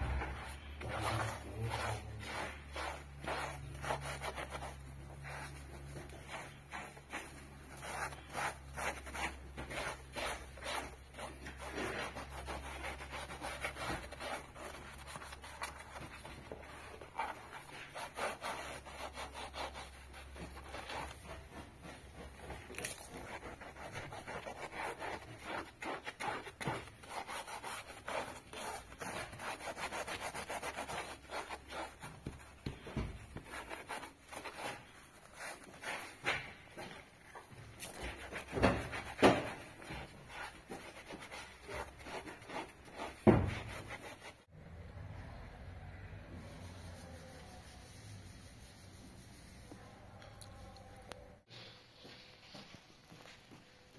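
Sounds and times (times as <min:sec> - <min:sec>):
sponge scrubbing fabric: 0:00.0 - 0:44.5, 0:46.4 - 0:49.8.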